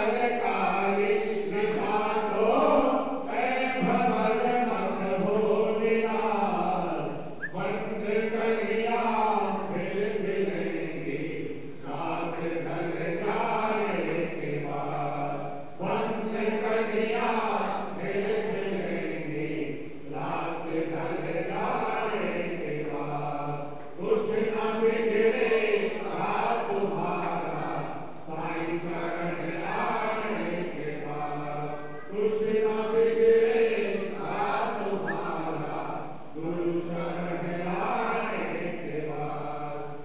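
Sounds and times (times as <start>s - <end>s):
men chanting a prayer: 0.0s - 40.0s.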